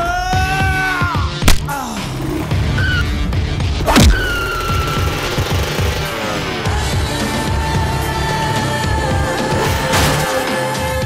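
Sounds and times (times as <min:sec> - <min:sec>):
action film score: 0:00.0 - 0:11.0.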